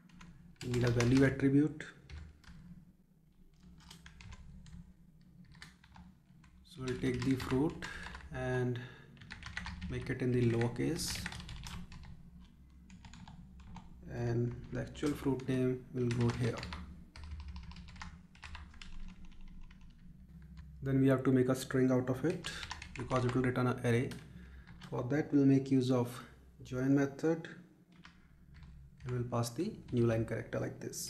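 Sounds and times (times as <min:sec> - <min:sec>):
keyboard typing: 0:00.0 - 0:01.4, 0:03.5 - 0:04.8, 0:05.4 - 0:08.3, 0:09.2 - 0:13.9, 0:14.5 - 0:20.7, 0:22.2 - 0:23.4, 0:27.9 - 0:30.2.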